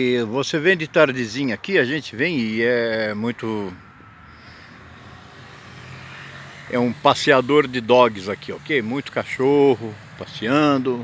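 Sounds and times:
car engine and tyre hum: 0:00.0 - 0:11.0.

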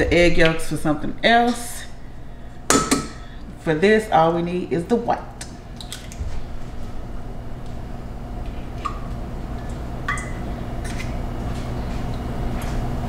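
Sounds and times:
steady low hum: 0:00.0 - 0:13.0
eggshell tapping metal bowl: 0:02.7 - 0:03.2.

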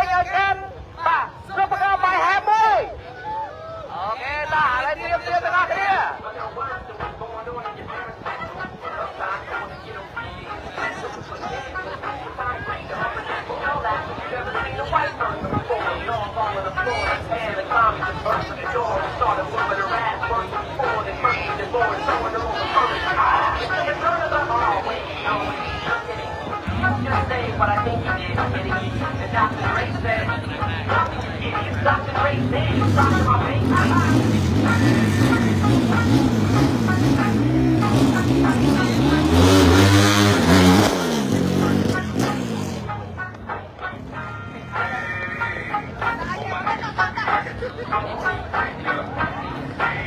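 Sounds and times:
people talking: 0:03.3 - 0:36.3, 0:42.9 - 0:50.0
race car engine rumble: 0:26.2 - 0:43.8.

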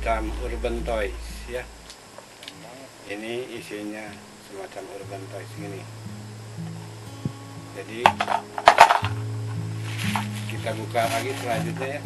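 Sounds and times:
background music: 0:05.1 - 0:12.0
plastic cups clattering: 0:08.1 - 0:09.2.

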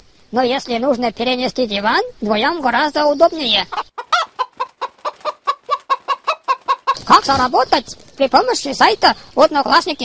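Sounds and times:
chicken clucking: 0:03.0 - 0:09.8.

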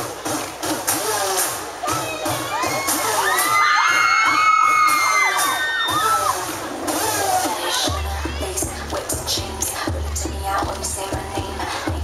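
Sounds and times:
dance music beat: 0:00.0 - 0:12.0
crowd screaming and cheering: 0:01.2 - 0:10.0.

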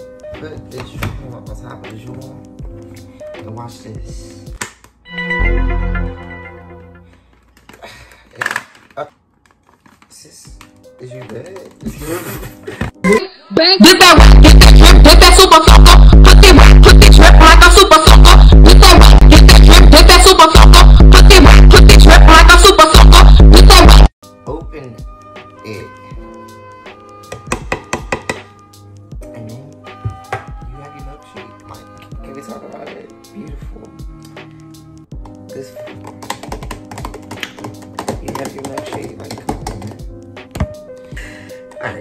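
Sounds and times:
background music: 0:00.0 - 0:42.0.

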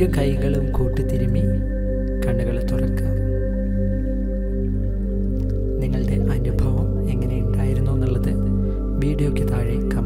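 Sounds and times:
meditation drone music: 0:00.0 - 0:10.0.

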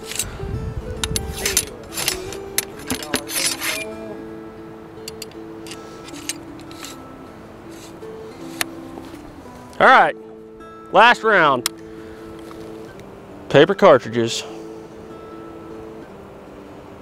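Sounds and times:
ramrod scraping in musket barrel: 0:00.0 - 0:00.3, 0:01.0 - 0:04.0, 0:05.1 - 0:07.0, 0:07.7 - 0:08.7
quiet background music: 0:00.0 - 0:17.0.

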